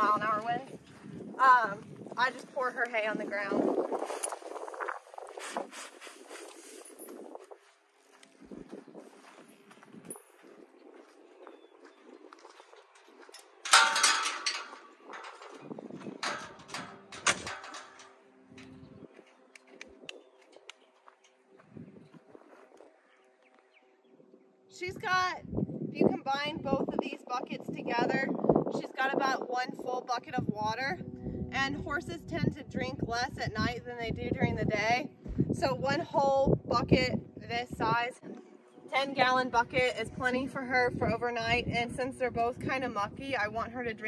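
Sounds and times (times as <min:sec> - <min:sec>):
footsteps on dirt: 0:00.0 - 0:23.9
metallic clank: 0:13.6 - 0:18.8.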